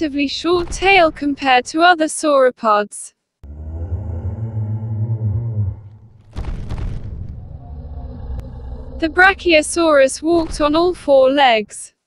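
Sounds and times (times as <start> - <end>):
synthesized dinosaur rumbling call: 3.4 - 10.7.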